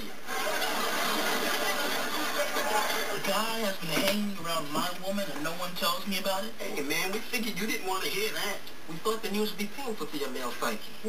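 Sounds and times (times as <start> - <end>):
studio audience laughing: 0.2 - 3.6.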